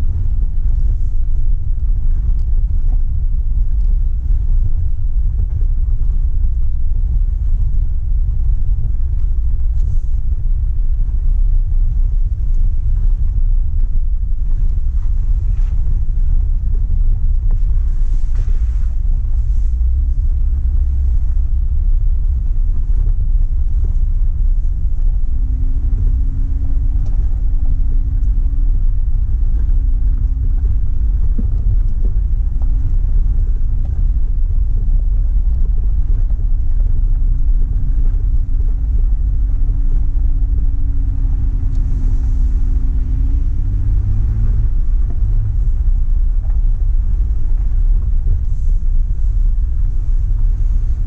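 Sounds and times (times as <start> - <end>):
vehicle rumble on gravel: 0.0 - 51.0
wind buffeting microphone: 0.0 - 51.0
faint engine note: 37.4 - 51.0.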